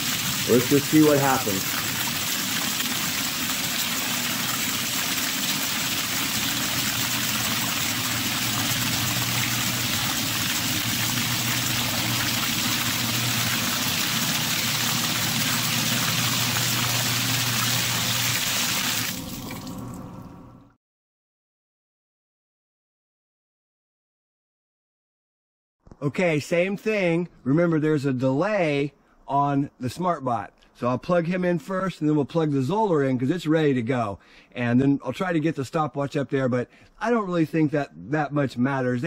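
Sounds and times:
water rushing from pump: 0:00.0 - 0:20.3
low motor hum: 0:07.4 - 0:17.6.

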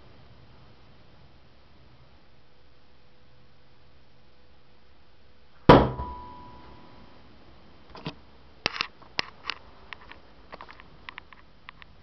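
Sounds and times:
shuriken thunking into door: 0:05.7 - 0:06.2
short metallic ring: 0:05.7 - 0:06.8.

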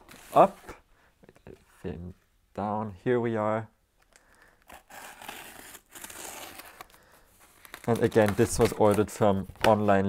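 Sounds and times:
cutter slitting packing tape: 0:04.6 - 0:06.9.

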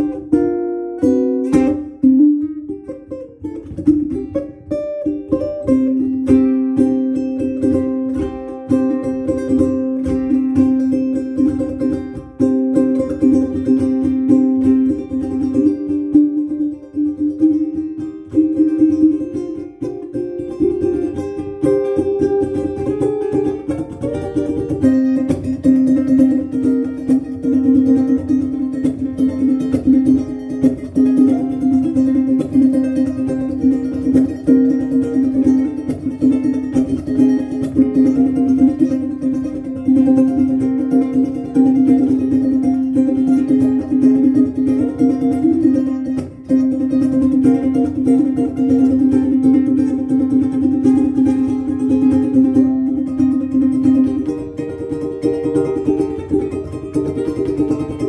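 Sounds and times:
ukulele melody: 0:00.0 - 0:58.0.

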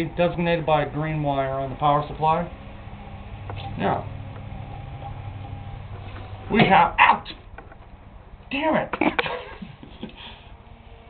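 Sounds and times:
computer fan hum: 0:00.0 - 0:11.0.

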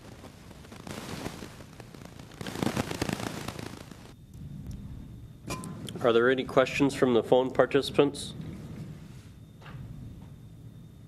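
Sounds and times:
crackling rustling clicks: 0:00.0 - 0:04.2
faint low hum: 0:00.0 - 0:11.0.

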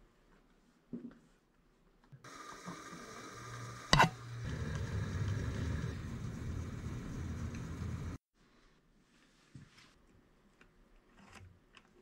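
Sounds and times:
milling machine motor humming: 0:02.3 - 0:08.2.

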